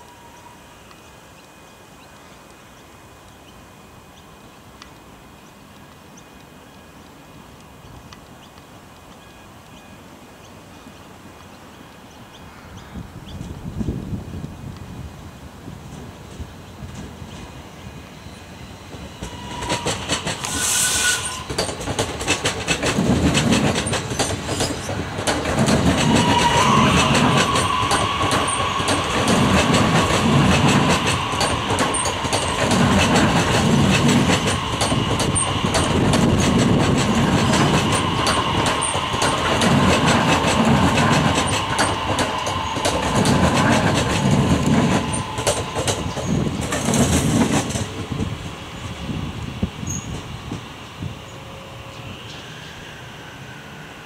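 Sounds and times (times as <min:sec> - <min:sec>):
electric train passing: 0:00.0 - 0:07.6, 0:12.0 - 0:54.0
wheels clattering over rail joints: 0:19.0 - 0:48.2.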